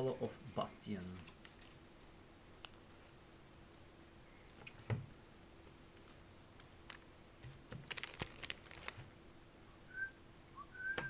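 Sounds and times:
cards clicking and snapping: 7.7s - 9.0s
high whistle-like chirps: 9.8s - 11.0s.

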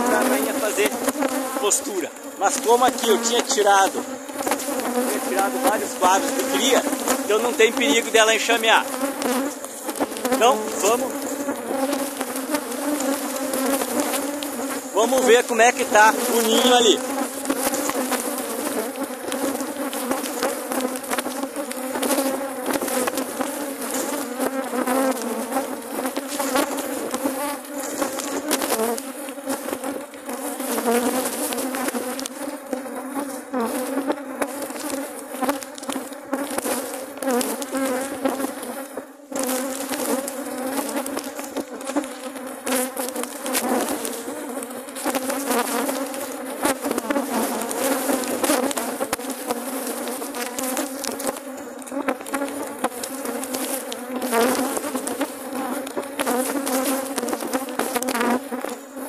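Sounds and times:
honey bees buzzing: 0.0s - 59.0s
small clicks: 34.8s - 38.8s.

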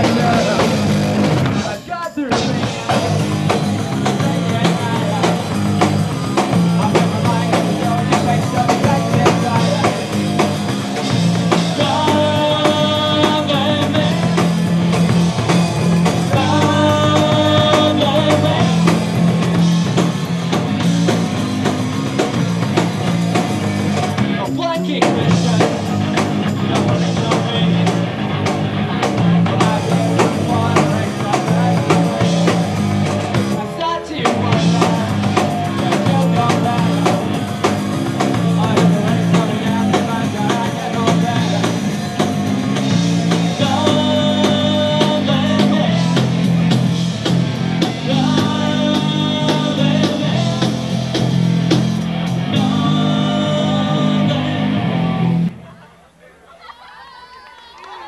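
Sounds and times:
person singing lead vocal: 0.0s - 20.1s, 24.0s - 55.8s
drum kit: 0.0s - 55.6s
bass guitar: 0.0s - 55.7s
distorted electric guitar: 0.0s - 55.7s.

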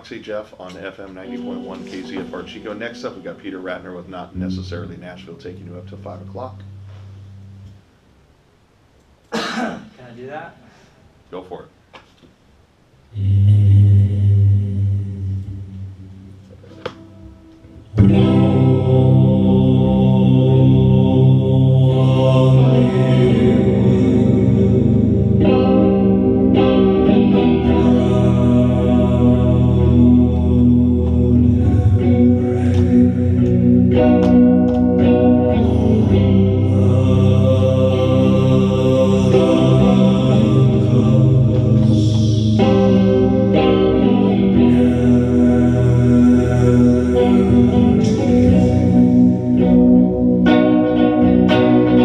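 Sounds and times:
electric guitar chords: 0.8s - 8.3s, 13.2s - 52.0s.

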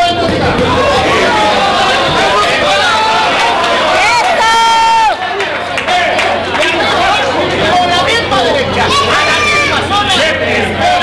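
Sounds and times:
crowd shouting and talking: 0.0s - 11.0s.

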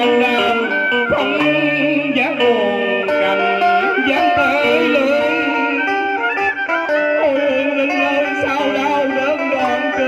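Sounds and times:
traditional funeral music: 0.0s - 10.0s.

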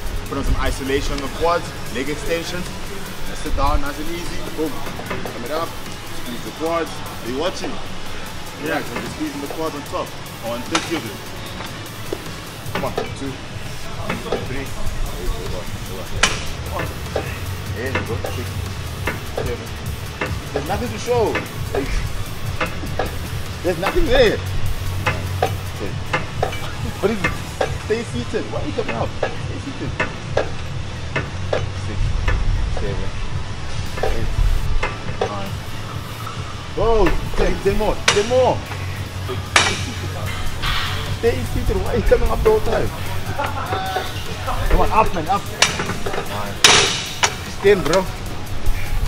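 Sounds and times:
background music: 0.0s - 49.0s
gym room noise: 0.0s - 49.0s.

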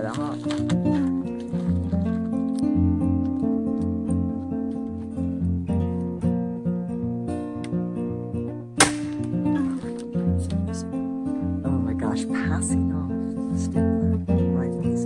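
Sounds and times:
acoustic guitar plucking: 0.0s - 15.0s.

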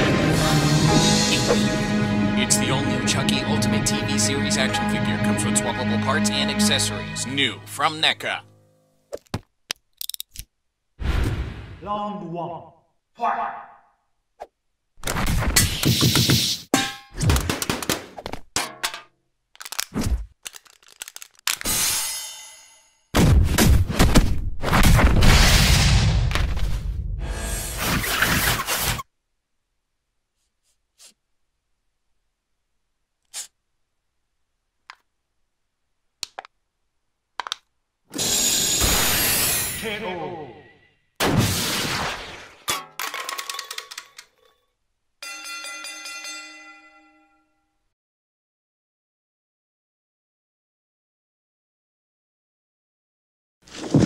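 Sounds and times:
rapid clatter of clicks: 19.6s - 21.6s
punch and kick impacts: 23.1s - 26.8s.

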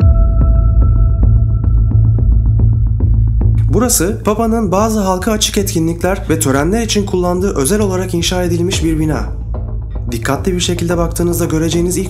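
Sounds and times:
steady high tone: 0.0s - 2.8s
deep throbbing bass drone: 0.0s - 12.0s.

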